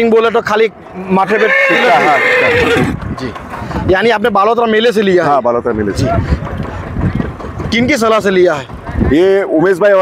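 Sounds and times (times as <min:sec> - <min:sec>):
horse whinnying: 0:01.0 - 0:03.0.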